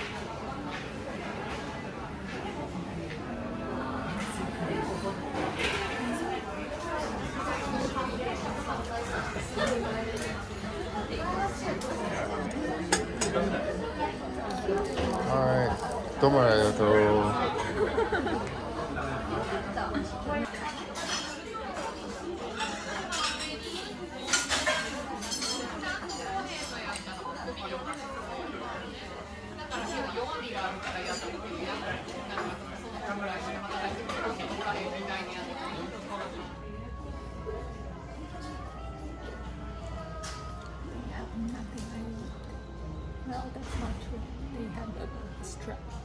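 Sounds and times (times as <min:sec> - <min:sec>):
murmur of diners: 0:00.0 - 0:46.0
people chattering: 0:00.0 - 0:46.0
tableware clinking: 0:22.6 - 0:27.1.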